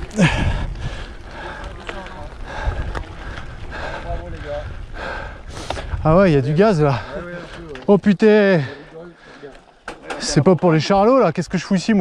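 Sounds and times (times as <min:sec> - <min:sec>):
bike tyres on gravel: 0:00.0 - 0:12.0
person breathing hard: 0:00.1 - 0:01.8, 0:02.4 - 0:06.0.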